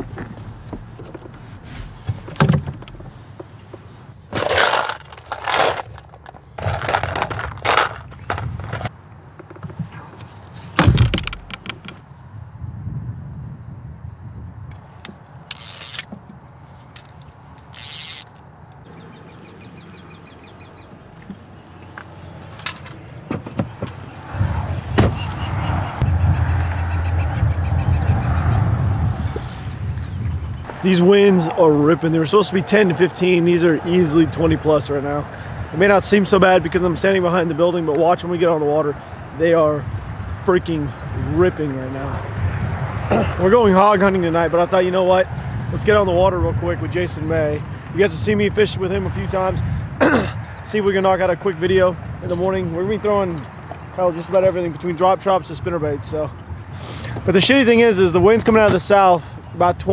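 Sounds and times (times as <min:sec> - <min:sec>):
fishing gear knocks and clatters: 0:00.0 - 0:03.6, 0:04.3 - 0:12.0
low steady rumble: 0:25.9 - 0:30.7.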